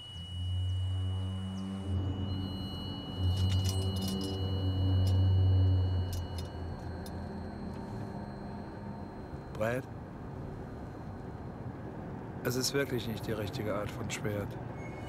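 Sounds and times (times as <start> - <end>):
low droning hum: 0.0 - 12.4
light metallic clinks: 2.7 - 8.6.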